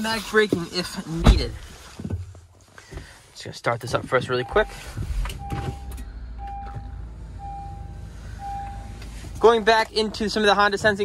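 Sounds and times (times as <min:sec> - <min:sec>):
dashboard warning chime beeping: 0:04.2 - 0:11.0
car engine idling: 0:04.5 - 0:11.0.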